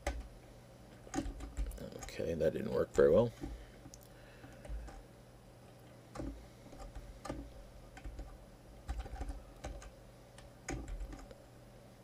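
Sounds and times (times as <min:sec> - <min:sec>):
computer keyboard typing: 0:00.0 - 0:00.3, 0:00.9 - 0:02.2, 0:04.4 - 0:05.0, 0:06.1 - 0:11.4.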